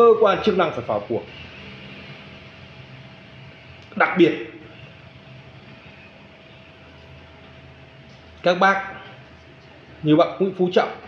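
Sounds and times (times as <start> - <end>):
faint machine hum: 0.0 - 11.0.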